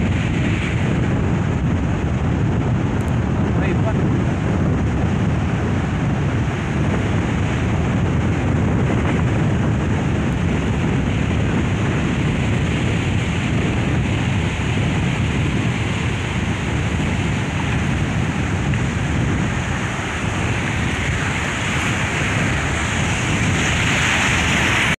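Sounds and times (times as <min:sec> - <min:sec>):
sea surf: 0:00.0 - 0:25.0
wave breaking close by: 0:00.0 - 0:25.0
wind buffeting microphone: 0:00.0 - 0:25.0.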